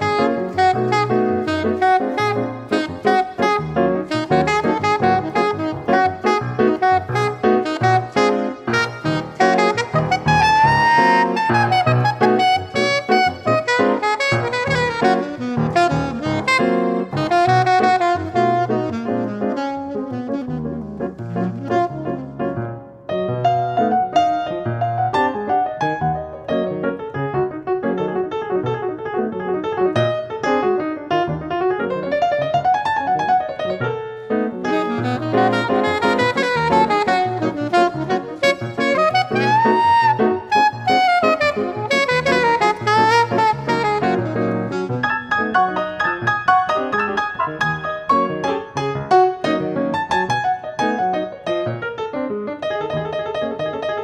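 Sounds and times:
saxophone melody: 0:00.0 - 0:26.6, 0:34.5 - 0:51.6
piano chords: 0:00.0 - 0:54.0.

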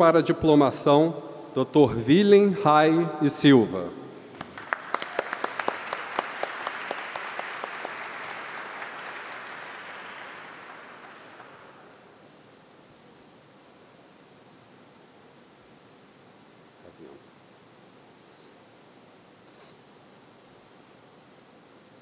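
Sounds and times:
audience applauding: 0:04.2 - 0:12.1
sharp close claps: 0:04.2 - 0:12.1.

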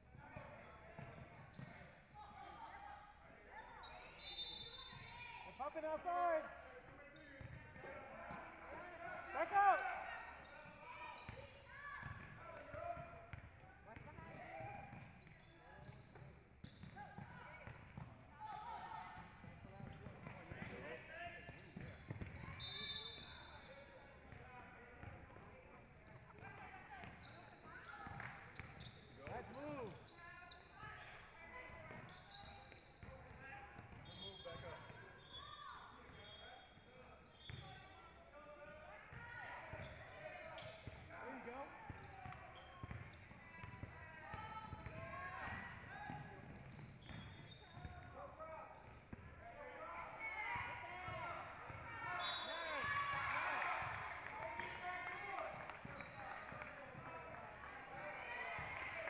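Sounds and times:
voices in a gym: 0:00.0 - 0:59.0.

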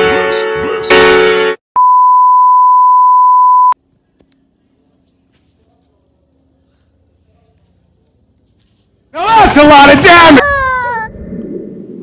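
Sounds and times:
television test-tone beep: 0:01.8 - 0:03.8.

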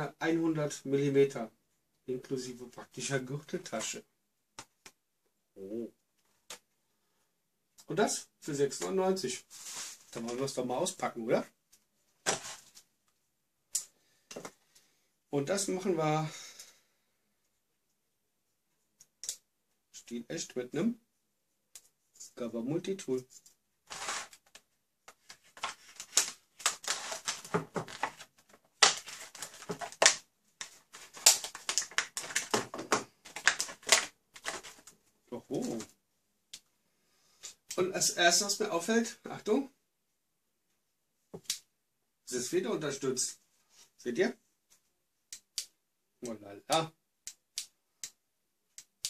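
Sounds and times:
plastic packaging crackling: 0:23.9 - 0:24.6, 0:25.2 - 0:35.0.

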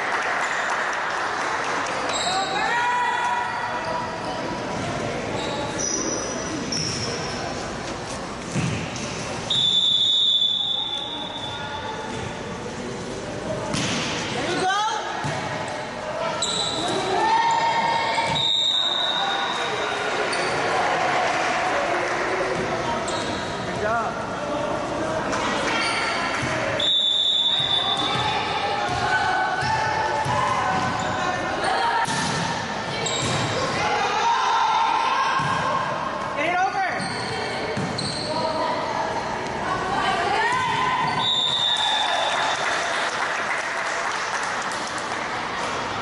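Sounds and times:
players calling and chattering: 0:00.0 - 0:42.7.

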